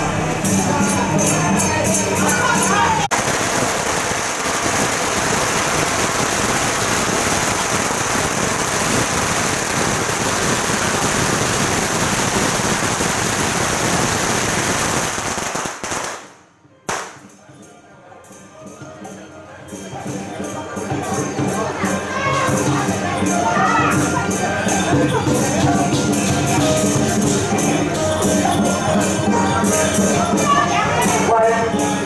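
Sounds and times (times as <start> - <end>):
firecrackers crackling: 3.0 - 17.4
single firecracker bang: 3.1 - 17.3.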